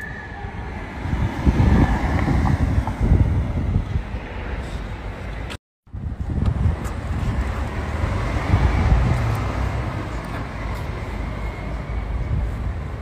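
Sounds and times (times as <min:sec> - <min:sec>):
car engine and tyres rumbling: 0:00.0 - 0:13.0
wind buffeting microphone: 0:00.0 - 0:13.0.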